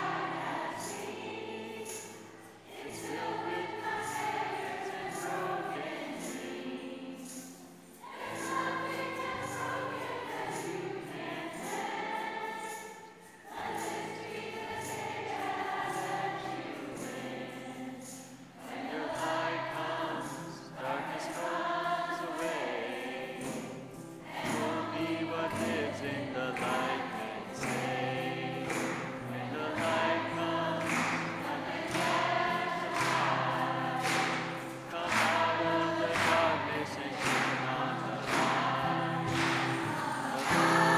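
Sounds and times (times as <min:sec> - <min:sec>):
women's choir singing: 0:00.0 - 0:40.9.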